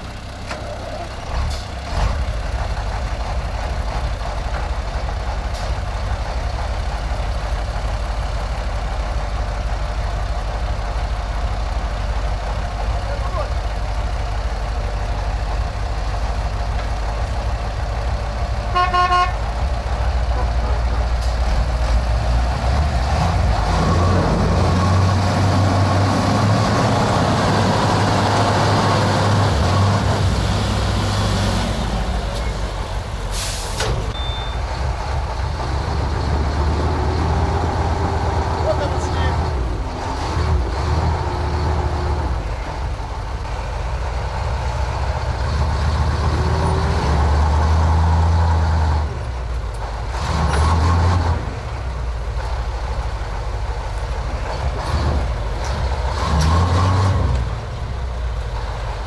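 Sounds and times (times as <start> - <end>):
diesel truck engines under load: 0.0 - 59.0
truck horn toot: 18.7 - 19.5.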